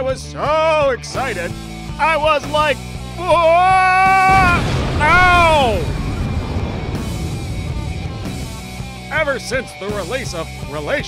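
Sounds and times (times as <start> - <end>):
cartoon explosion rumble: 4.2 - 9.5.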